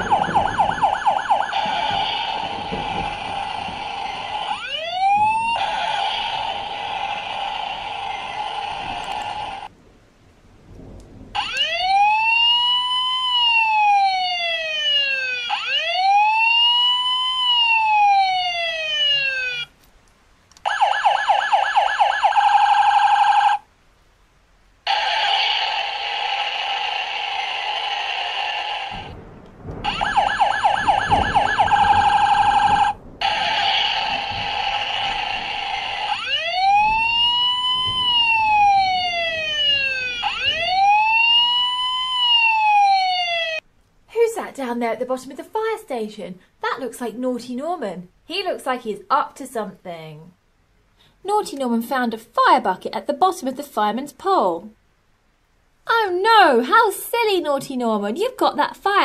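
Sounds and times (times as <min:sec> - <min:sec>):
toy electronic siren: 0:00.0 - 0:09.7, 0:11.4 - 0:19.7, 0:20.6 - 0:23.6, 0:24.9 - 0:29.1, 0:29.9 - 0:43.6.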